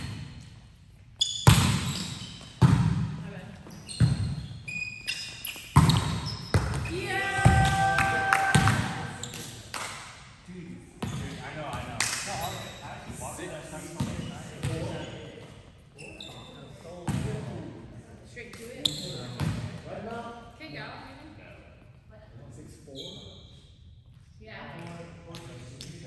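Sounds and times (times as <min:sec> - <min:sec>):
volleyball hits: 0:01.4 - 0:03.3, 0:05.7 - 0:10.1
players' voices echoing: 0:06.6 - 0:15.5.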